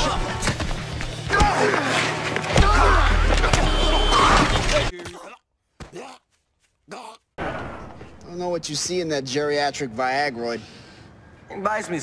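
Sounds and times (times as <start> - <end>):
street traffic: 2.1 - 4.9, 7.8 - 12.0.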